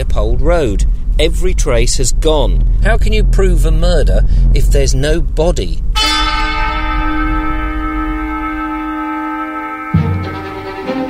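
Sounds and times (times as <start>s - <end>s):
bell-like tone ringing: 6.0s - 11.0s.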